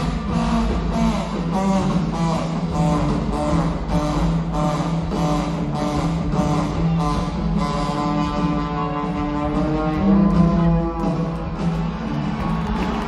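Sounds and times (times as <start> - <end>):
live rock band: 0.0 - 13.0
steady drum beat: 0.0 - 13.0.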